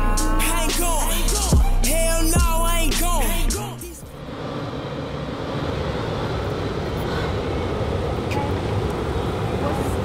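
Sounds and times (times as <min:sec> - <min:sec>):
traffic: 0:00.0 - 0:10.0.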